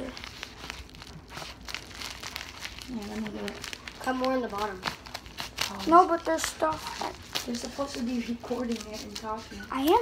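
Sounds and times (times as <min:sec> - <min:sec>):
plastic crinkling: 0:00.0 - 0:10.0
scissors cutting plastic: 0:00.0 - 0:10.0.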